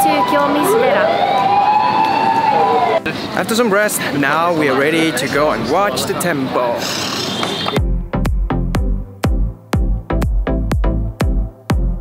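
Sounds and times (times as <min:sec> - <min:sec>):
street noise: 0:00.0 - 0:08.4.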